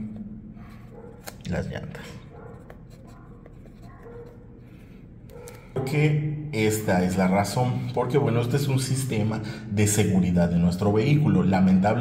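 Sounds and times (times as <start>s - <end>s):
fountain pen scratching on paper: 2.1s - 4.8s.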